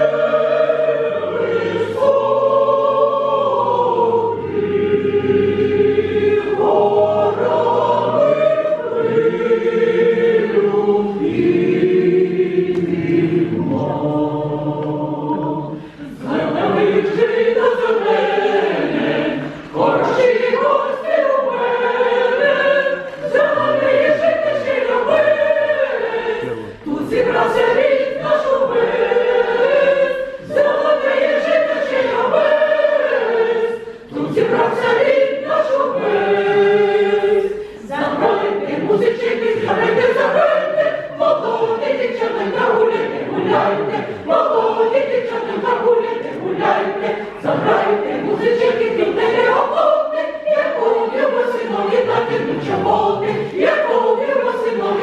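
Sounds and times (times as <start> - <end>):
folk choir singing: 0.0 - 55.0.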